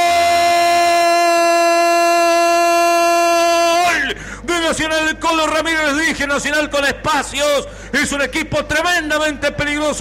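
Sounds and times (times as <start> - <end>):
man shouting long goal cry: 0.0 - 4.2.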